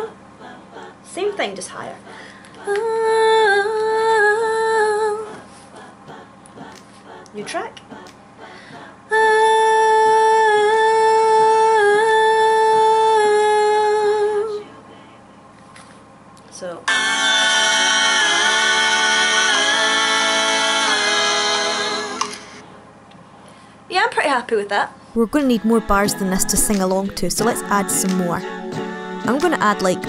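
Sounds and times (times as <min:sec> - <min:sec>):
layered vocal harmonies: 0:00.0 - 0:14.7, 0:16.9 - 0:22.6, 0:25.2 - 0:30.0
woman singing sustained note: 0:25.2 - 0:28.5.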